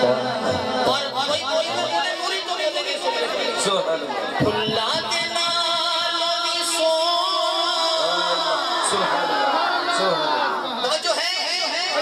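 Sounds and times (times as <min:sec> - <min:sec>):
murmur of chatter: 0:00.0 - 0:12.0.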